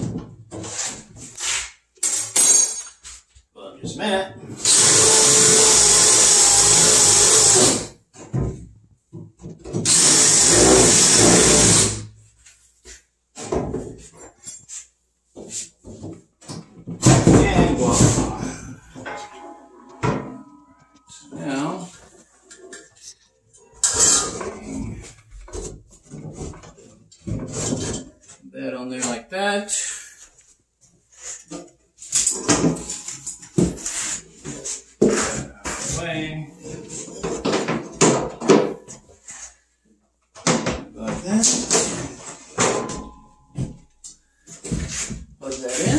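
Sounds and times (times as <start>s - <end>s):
cordless drill drilling wood: 4.6s - 7.9s, 9.8s - 12.0s
knocks and handling clatter: 22.0s - 28.5s.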